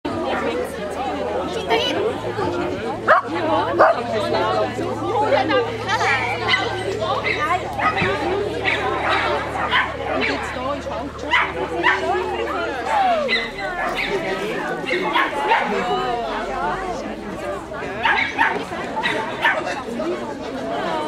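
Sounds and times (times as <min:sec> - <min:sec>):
chatter of voices: 0:00.0 - 0:21.0
dog barking: 0:03.1 - 0:04.0, 0:06.4 - 0:10.6, 0:11.3 - 0:12.2, 0:13.3 - 0:14.2, 0:14.8 - 0:15.7, 0:18.0 - 0:19.7.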